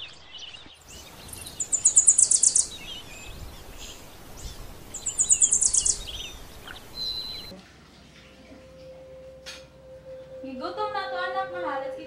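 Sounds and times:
background hiss: 0:00.8 - 0:12.0
bird trilling: 0:00.9 - 0:07.5
faint scattered chirps: 0:00.9 - 0:07.5.

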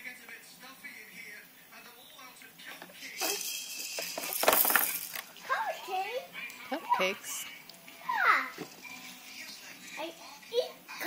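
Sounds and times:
plastic toys rattling and clicking: 0:02.8 - 0:06.1.

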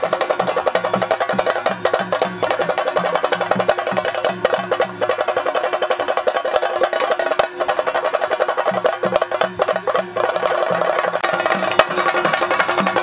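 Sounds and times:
fast drumming with sticks: 0:00.0 - 0:13.0.

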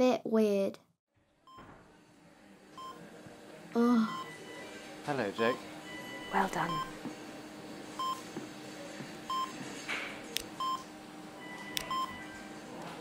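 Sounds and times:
patient monitor beeping: 0:02.8 - 0:03.0, 0:03.9 - 0:07.0, 0:08.0 - 0:08.2, 0:09.3 - 0:09.6, 0:10.6 - 0:12.6.

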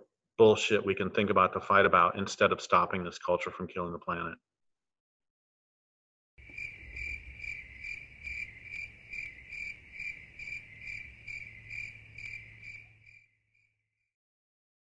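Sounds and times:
cricket chirping: 0:06.4 - 0:14.1.

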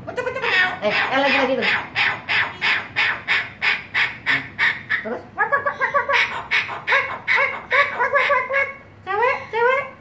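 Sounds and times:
cockatoo calls: 0:00.2 - 0:09.6.

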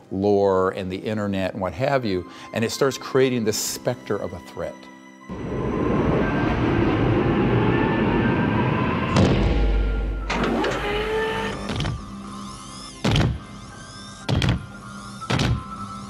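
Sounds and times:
background music: 0:00.0 - 0:06.8, 0:09.2 - 0:16.0
electric servo whines: 0:05.3 - 0:16.0
short mechanical whirs: 0:06.2 - 0:12.8
heavy mechanical clank: 0:09.0 - 0:12.1.

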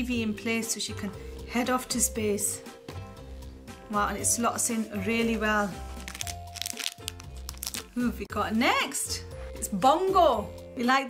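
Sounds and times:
background music with steady beat: 0:00.0 - 0:11.0
foil packet crinkling and tearing: 0:05.9 - 0:08.0.

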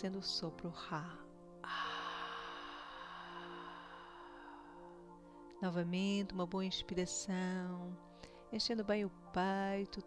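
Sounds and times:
soft ambient music: 0:00.0 - 0:10.0
woman breathing out: 0:01.6 - 0:05.5.

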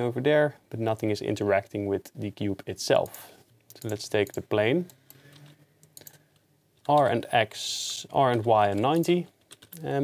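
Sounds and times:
computer keyboard keys tapping: 0:08.2 - 0:09.8.

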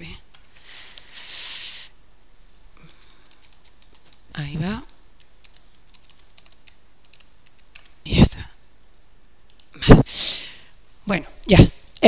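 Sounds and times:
keyboard and mouse clicks: 0:02.9 - 0:08.0, 0:09.5 - 0:09.8.

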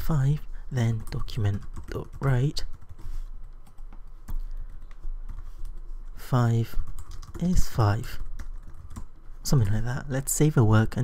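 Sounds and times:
steady low hum: 0:00.0 - 0:11.0
computer keyboard keys tapping: 0:00.9 - 0:05.8, 0:06.8 - 0:07.6, 0:08.2 - 0:09.2.

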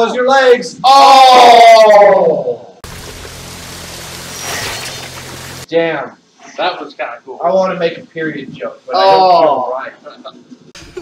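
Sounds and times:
rushing splashing water: 0:02.8 - 0:05.7.

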